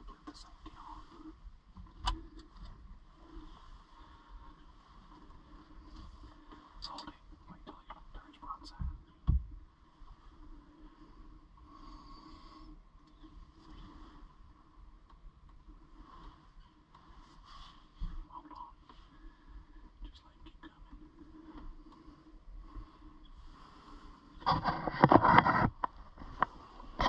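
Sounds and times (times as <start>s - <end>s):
dull thump: 8.8s - 9.6s.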